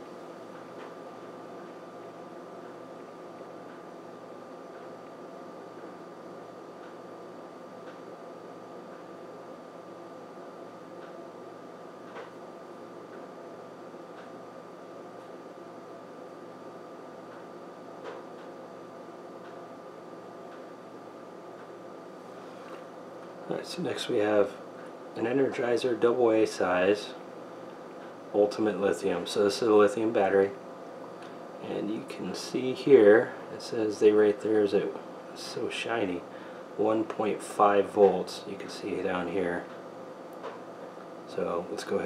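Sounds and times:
faint steady whine: 0.0 - 42.0
low room hum: 0.0 - 42.0.

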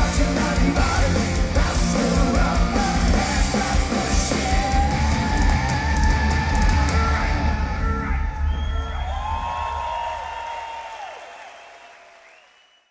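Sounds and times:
live metal band playing: 0.0 - 8.3.

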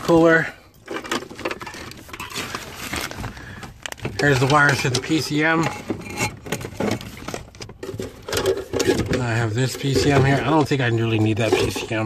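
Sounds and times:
rustling and scraping of parts: 0.0 - 12.0.

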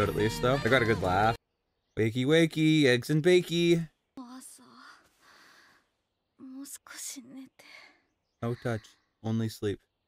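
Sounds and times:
woman whispering: 4.2 - 5.1
breathy hiss: 4.9 - 5.9.

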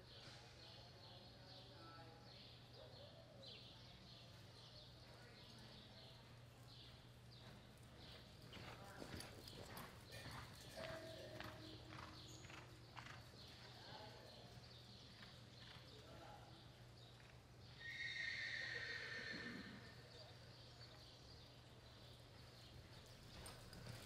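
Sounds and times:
hoofbeats on soft dirt: 4.2 - 17.8, 20.5 - 24.0.

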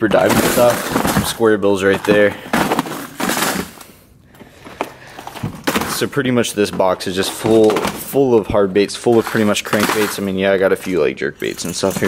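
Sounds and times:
plastic boxes scraping and rattling: 0.0 - 12.0.

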